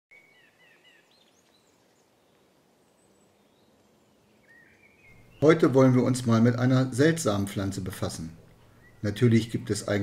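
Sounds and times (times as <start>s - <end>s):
background hiss: 0.1s - 10.0s
faint birds chirping: 0.1s - 10.0s.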